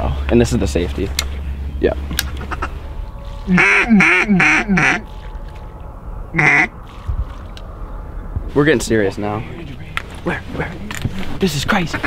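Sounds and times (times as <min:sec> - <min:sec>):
duck quack: 0:03.6 - 0:05.0, 0:06.4 - 0:06.7.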